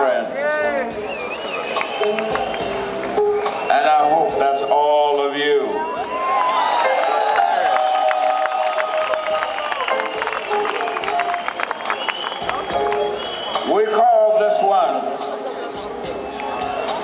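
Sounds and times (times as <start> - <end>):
soft band backing: 0.0 - 17.0
audience clapping and calls: 1.0 - 3.7, 5.8 - 13.8, 16.0 - 17.0
man's voice over loudspeakers: 3.7 - 5.8, 13.7 - 15.2.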